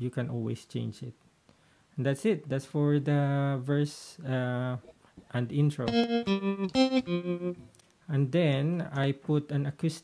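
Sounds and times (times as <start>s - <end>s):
electric guitar single notes: 5.8s - 7.7s.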